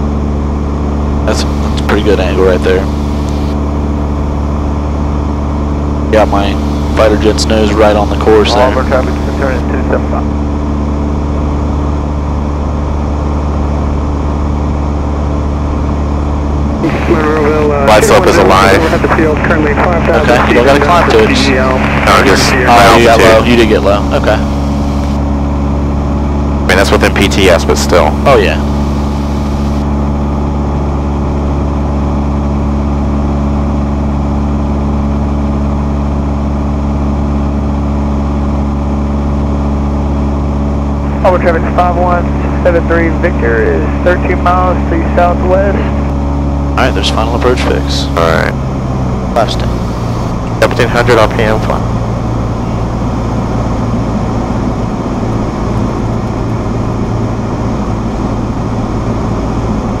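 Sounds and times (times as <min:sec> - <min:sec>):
airplane engine and propeller: 0:00.0 - 1:00.0.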